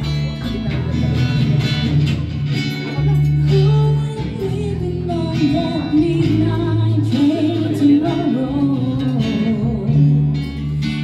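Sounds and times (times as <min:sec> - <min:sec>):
electric bass: 0:00.0 - 0:11.0
guitar: 0:00.0 - 0:11.0
person singing: 0:03.4 - 0:11.0.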